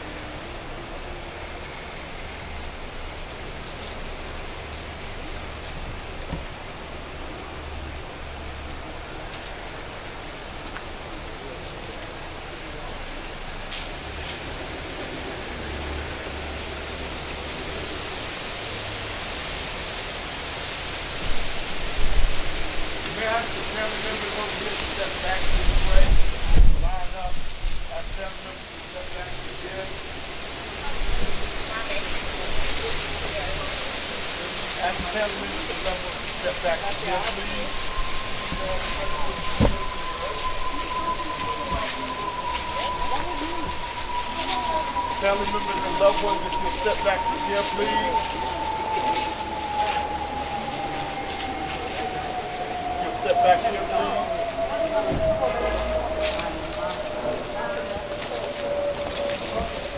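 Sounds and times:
distant voices talking: 0.0s - 20.2s, 21.2s - 59.9s
outdoor hiss: 0.0s - 59.9s
low rumble: 35.6s - 59.9s.

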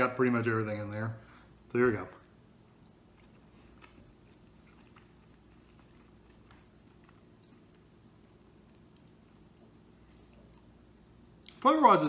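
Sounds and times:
low room hum: 0.0s - 12.0s
faint chewing: 2.1s - 11.6s.

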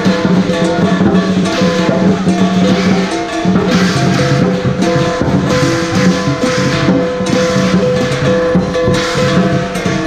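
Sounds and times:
cymbal clashes: 0.0s - 10.0s
drum gong and cymbal band: 0.0s - 10.0s
sustained ringing pitched tones: 0.0s - 10.0s.

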